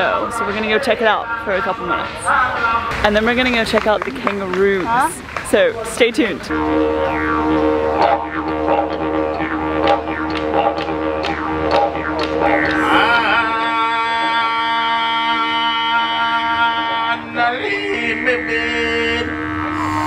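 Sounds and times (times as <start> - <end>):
didgeridoo droning: 6.2 - 20.0.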